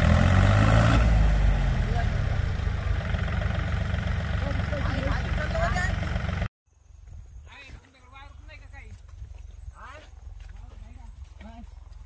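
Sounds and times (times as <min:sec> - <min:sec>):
tractor diesel engine running: 0:00.0 - 0:06.5.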